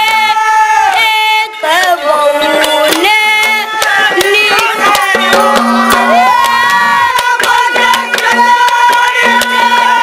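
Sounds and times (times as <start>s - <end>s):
drum strokes: 3.8s - 10.0s.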